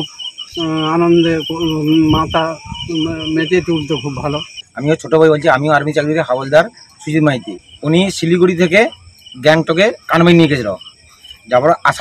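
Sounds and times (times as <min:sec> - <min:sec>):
man speaking: 0:00.0 - 0:10.8, 0:11.4 - 0:12.0
insects chirping: 0:00.0 - 0:12.0.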